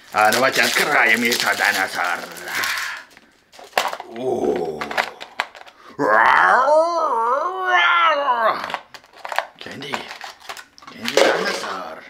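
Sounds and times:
plastic toy packaging rustling: 0.0 - 5.9, 8.6 - 12.0
person's wordless vocal exclamation: 4.0 - 5.2.

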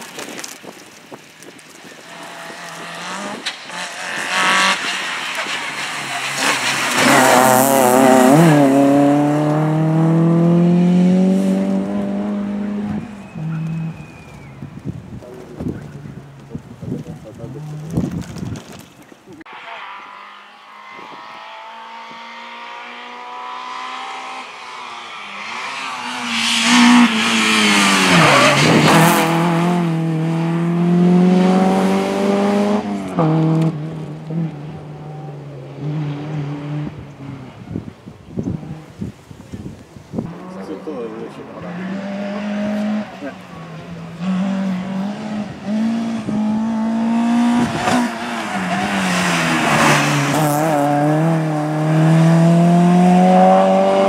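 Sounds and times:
tyre noise: 0.0 - 19.4
rally car engine at high revs: 2.1 - 14.2, 19.8 - 37.8, 40.3 - 54.0.

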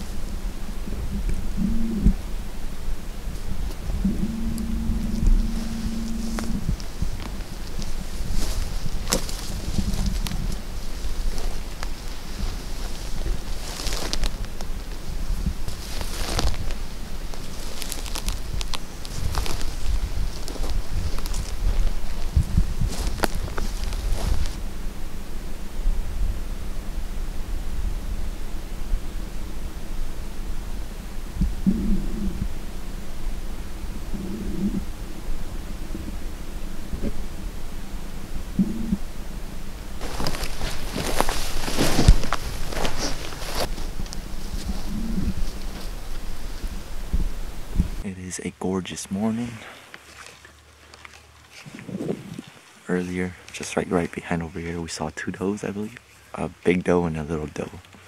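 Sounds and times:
short low sounds: 0.0 - 2.3, 3.2 - 8.7, 18.2 - 48.2
low rumble on microphone: 0.0 - 48.2
rustling of dry grass and clothing: 0.0 - 48.5, 49.1 - 58.0.

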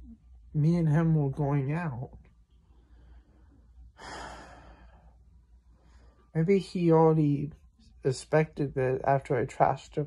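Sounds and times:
faint low hum: 0.0 - 10.0
man breathing out: 2.8 - 5.1.

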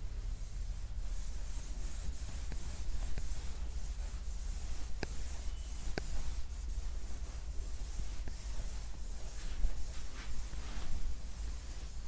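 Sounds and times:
steady hiss: 0.0 - 12.0
pen strokes on writing board: 1.0 - 12.0.

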